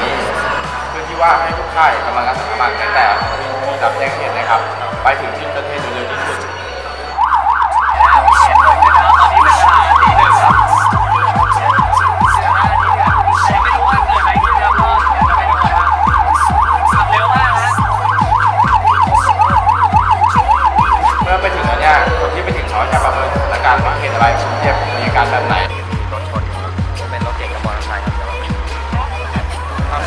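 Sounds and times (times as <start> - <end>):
music beat: 0.0 - 27.9
electronic siren yelping: 0.1 - 26.0.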